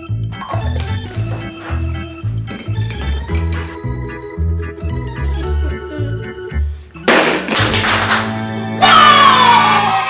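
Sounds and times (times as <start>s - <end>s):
upbeat background music: 0.0s - 10.0s
toy bowling pins crashing: 7.0s - 8.4s.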